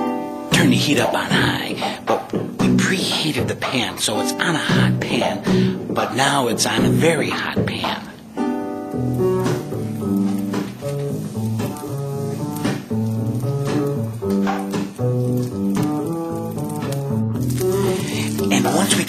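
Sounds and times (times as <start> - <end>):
instrumental music with bass line: 0.0 - 19.0.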